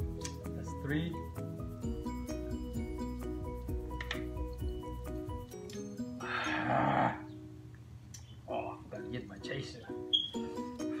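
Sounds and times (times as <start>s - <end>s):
plucked notes music: 0.0s - 6.6s, 8.8s - 11.0s
man's raspy gasp: 6.2s - 7.2s.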